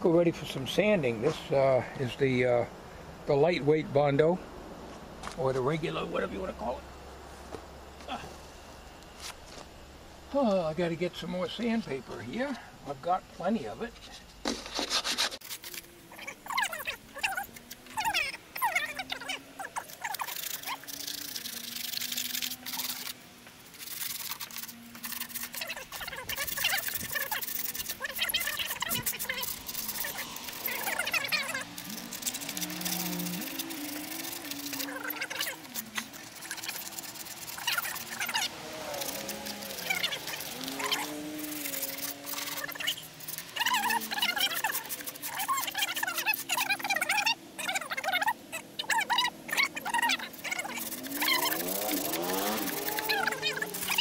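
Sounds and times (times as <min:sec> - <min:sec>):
sandpaper rubbing: 0:14.5 - 0:18.2, 0:18.9 - 0:48.0, 0:49.0 - 0:54.0
high chirping squeaks: 0:16.1 - 0:23.2, 0:23.8 - 0:54.0.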